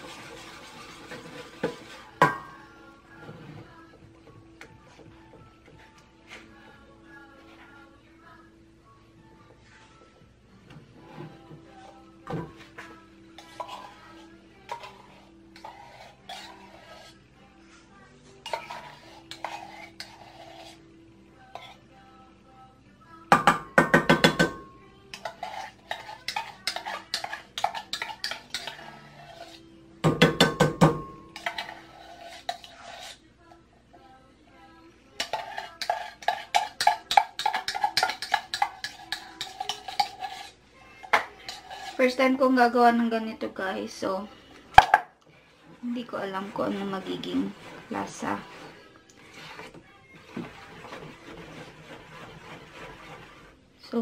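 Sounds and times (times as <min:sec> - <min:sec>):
metal spoon scraping tin can: 0:13.4 - 0:17.2, 0:18.4 - 0:20.8, 0:25.1 - 0:29.6, 0:31.3 - 0:33.2, 0:35.2 - 0:42.4, 0:45.6 - 0:53.6.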